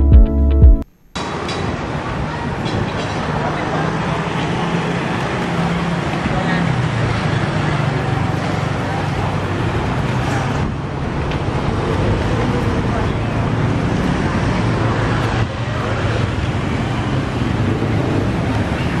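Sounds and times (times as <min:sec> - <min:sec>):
traffic noise: 0:00.8 - 0:19.0.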